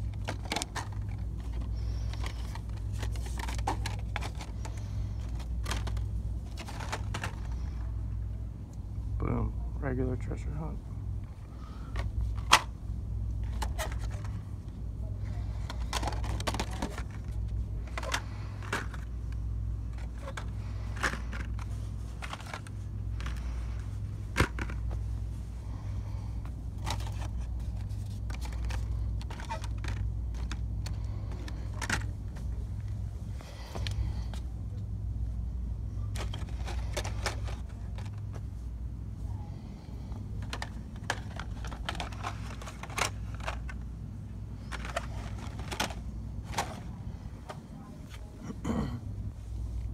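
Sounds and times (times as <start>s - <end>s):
plastic packages clicking and rattling: 0.0s - 8.0s, 11.8s - 14.6s, 15.2s - 25.1s, 25.7s - 34.4s, 36.0s - 38.6s, 40.0s - 47.6s.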